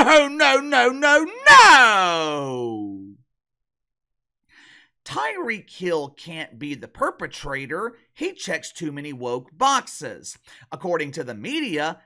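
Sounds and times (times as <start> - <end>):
man shouting: 0.0 - 3.1.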